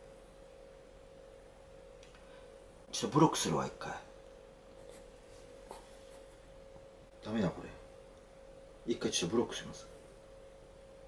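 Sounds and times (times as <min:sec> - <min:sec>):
faint steady pure tone: 0:00.0 - 0:11.0.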